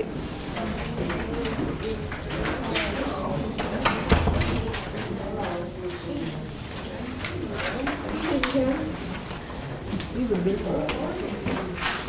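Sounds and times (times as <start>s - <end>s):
people chattering: 0.0s - 12.0s
papers rustling: 0.3s - 12.0s.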